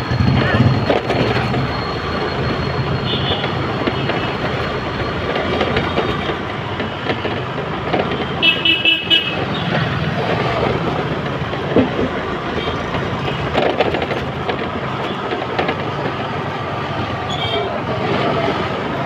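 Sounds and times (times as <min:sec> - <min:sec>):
traffic engines and road noise: 0:00.0 - 0:19.0
vehicle horn beeps: 0:03.0 - 0:04.3, 0:08.2 - 0:09.7, 0:17.3 - 0:17.8.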